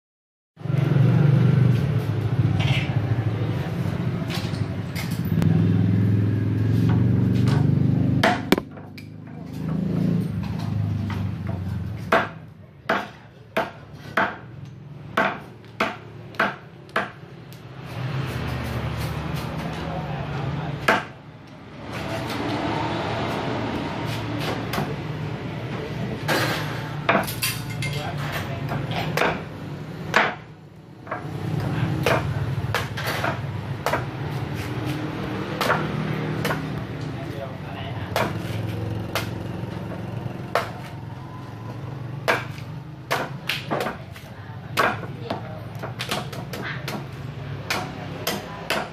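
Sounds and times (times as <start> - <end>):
machete chopping branch: 8.2 - 8.8, 32.0 - 36.8, 38.1 - 39.4, 42.2 - 45.1, 45.8 - 48.9
machete striking coconut husk: 8.2 - 8.8, 38.1 - 39.4, 42.2 - 45.1, 45.9 - 48.9.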